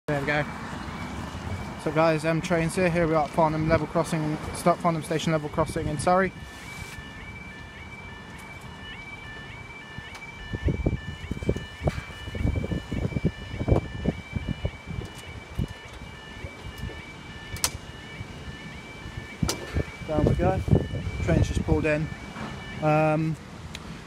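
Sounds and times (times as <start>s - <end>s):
level crossing two-tone alarm: 0.3s - 23.4s.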